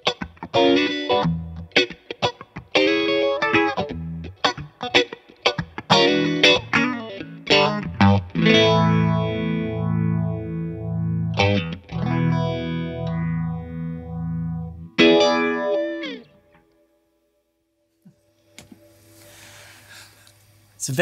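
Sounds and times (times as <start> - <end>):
electric guitar chords with phaser: 0.0 - 16.6.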